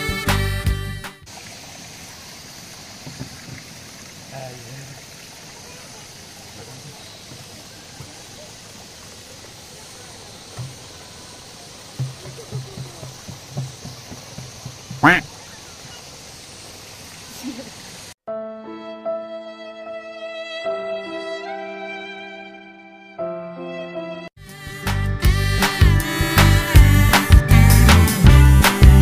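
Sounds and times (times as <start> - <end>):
steady hiss: 1.3 - 18.2.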